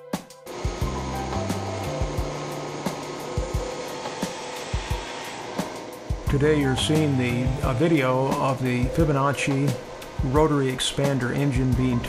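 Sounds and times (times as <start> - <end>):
background music with bass: 0.0 - 4.1, 4.8 - 12.0
air compressor rushing air: 0.4 - 12.0.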